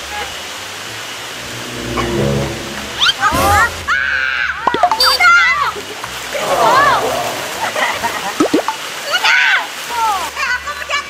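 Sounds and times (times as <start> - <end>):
pool water splashing: 0.6 - 11.0.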